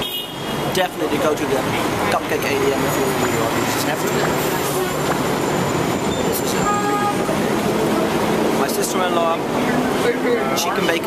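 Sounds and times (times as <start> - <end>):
vehicle horn toot: 0.0 - 0.5, 6.6 - 7.3
city street traffic: 0.0 - 11.0.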